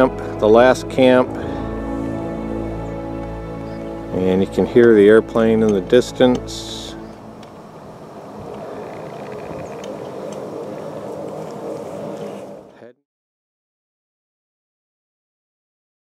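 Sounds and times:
distant airplane engine drone: 0.0s - 12.9s.

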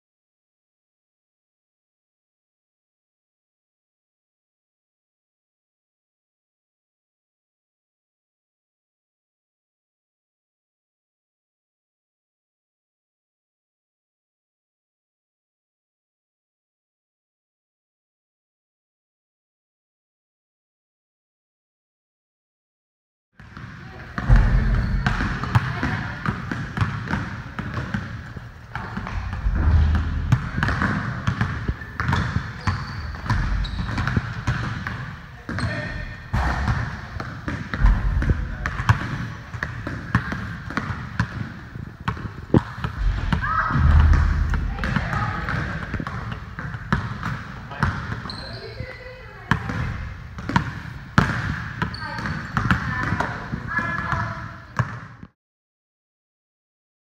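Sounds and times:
basketballs bouncing on gym floor: 23.4s - 55.3s.

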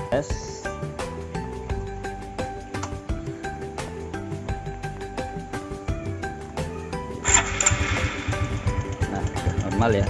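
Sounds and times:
background music: 0.0s - 10.0s
motorcycle engine idling: 7.2s - 10.0s.

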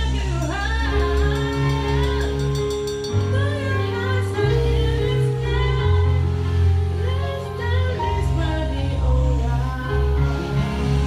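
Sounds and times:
live drum kit playing: 0.0s - 4.3s
song with lead vocal: 0.0s - 11.0s.

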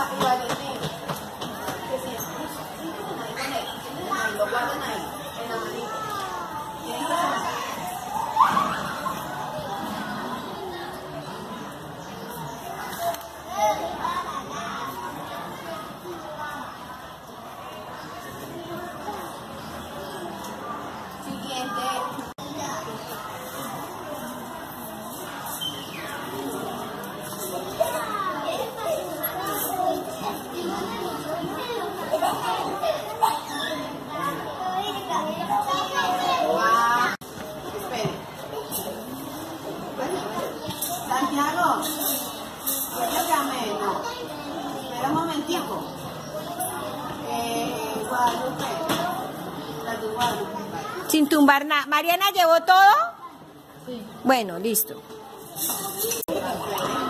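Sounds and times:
young children chattering: 0.0s - 57.0s.

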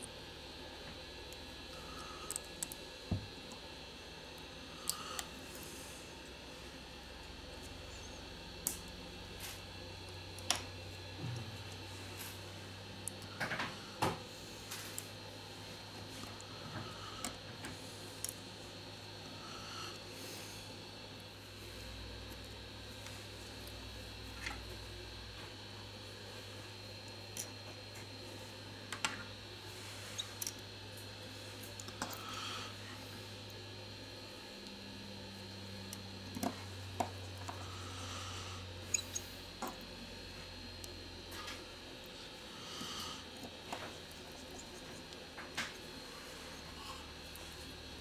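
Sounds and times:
steady low hum: 0.0s - 48.0s.

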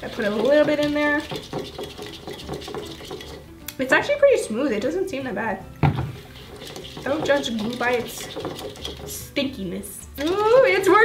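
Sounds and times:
fork stirring sticky slime: 0.0s - 3.8s, 6.1s - 9.4s, 10.2s - 11.0s.

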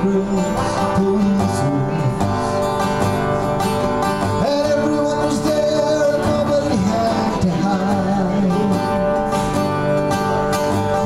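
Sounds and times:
man singing: 0.0s - 2.8s, 4.3s - 9.4s
acoustic guitar strumming: 0.0s - 11.0s.

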